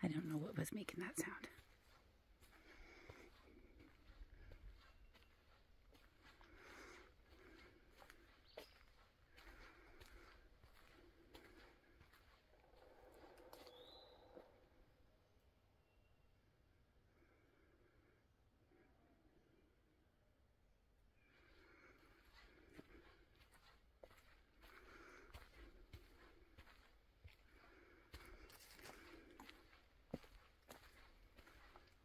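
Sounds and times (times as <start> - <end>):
footsteps on dirt trail: 0.1 - 14.1, 21.7 - 32.0.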